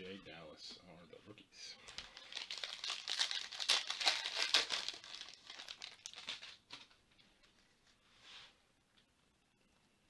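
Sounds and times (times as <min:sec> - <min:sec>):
foil wrapper tearing and crinkling: 0:01.9 - 0:06.8.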